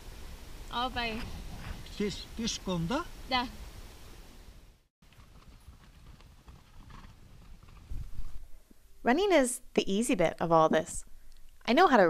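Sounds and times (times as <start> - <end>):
hoofbeats on stony ground: 5.0 - 8.4.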